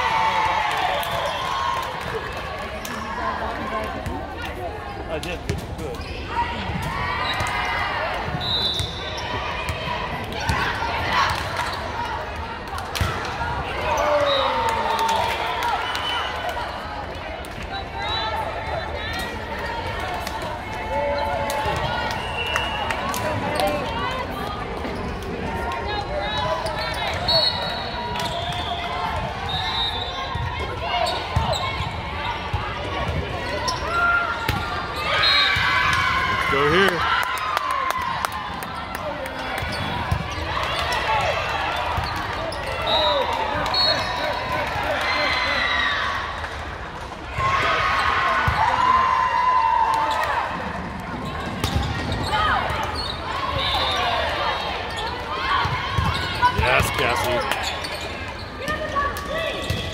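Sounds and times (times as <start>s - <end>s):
chatter and calls of people: 0.0s - 59.9s
balls bouncing on court: 3.8s - 9.0s, 35.6s - 42.8s, 49.9s - 53.1s, 55.0s - 59.9s.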